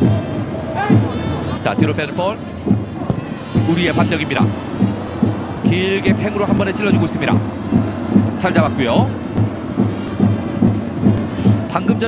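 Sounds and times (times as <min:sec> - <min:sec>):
football crowd noise: 0:00.0 - 0:12.0
stadium drumming: 0:00.0 - 0:12.0.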